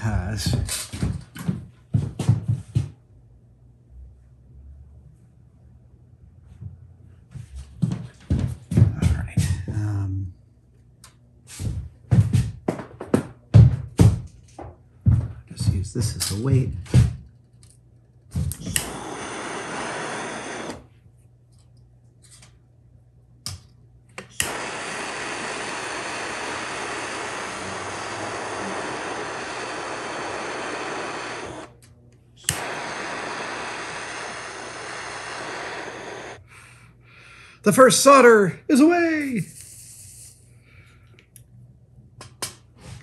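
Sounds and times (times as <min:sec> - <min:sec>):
gas torch hissing: 0:18.4 - 0:20.9, 0:24.2 - 0:31.8, 0:32.4 - 0:36.6
torch ignition click: 0:18.5 - 0:20.9, 0:24.2 - 0:36.4.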